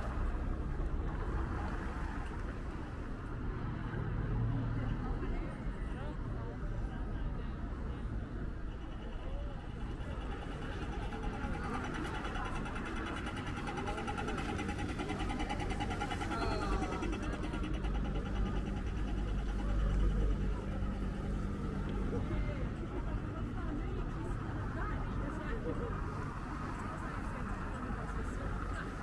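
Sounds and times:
passing voices: 0.0s - 29.0s
street traffic rumble: 0.0s - 29.0s
crossing signal ticking rapidly: 8.8s - 21.8s.

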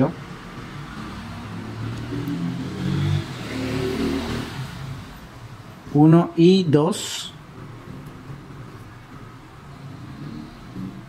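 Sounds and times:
vehicle engine passing by: 0.0s - 5.7s, 7.5s - 11.0s.

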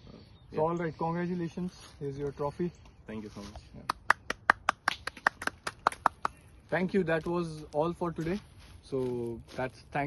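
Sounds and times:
hand claps: 3.8s - 6.5s.

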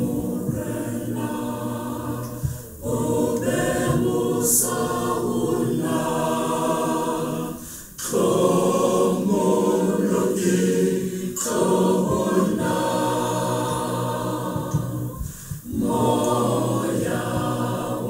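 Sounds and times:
congregation singing a hymn: 0.0s - 18.0s.

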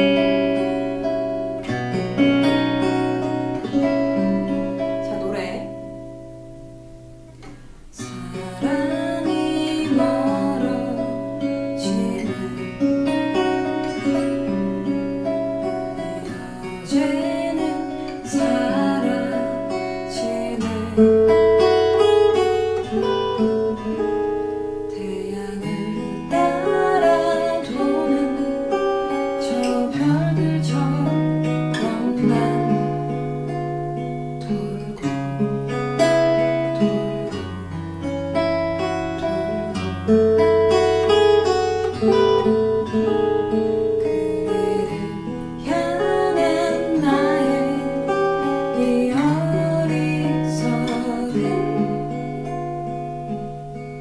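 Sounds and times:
fingerstyle acoustic guitar: 0.0s - 54.0s.

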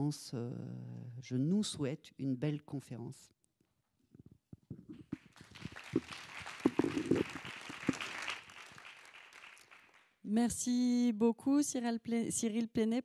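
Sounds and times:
audience applauding: 5.0s - 10.1s.

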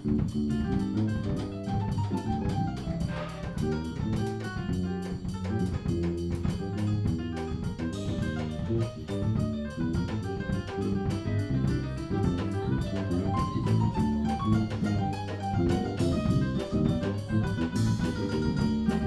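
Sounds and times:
digital piano: 0.0s - 19.0s
drum kit beat: 0.0s - 19.0s
electric bass: 0.0s - 19.0s.

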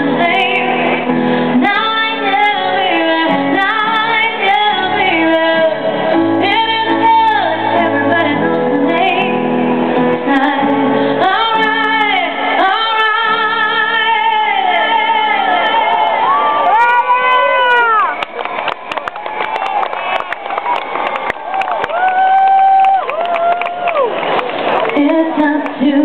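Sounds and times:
woman singing: 0.0s - 16.0s, 24.9s - 26.0s.

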